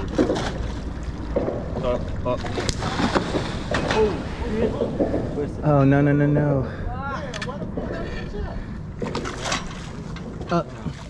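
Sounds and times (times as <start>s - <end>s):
sharp knocks or splashes: 0.0s - 5.4s, 9.0s - 11.0s
water noise: 0.0s - 11.0s
wind: 0.0s - 11.0s
people talking: 3.8s - 8.7s.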